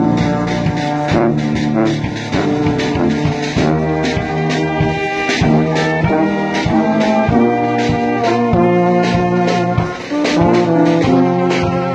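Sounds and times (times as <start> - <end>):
brass band playing: 0.0 - 11.9.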